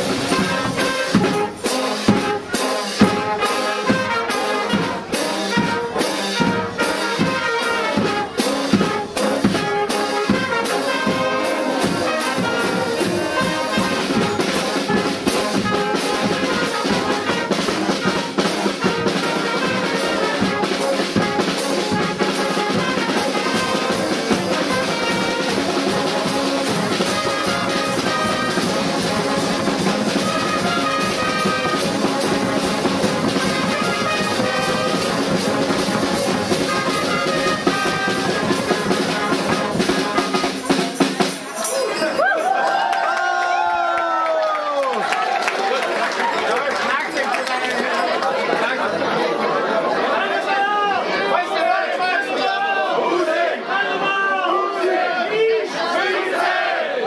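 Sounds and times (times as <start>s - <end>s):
brass band playing march: 0.0s - 42.1s, 49.9s - 57.0s.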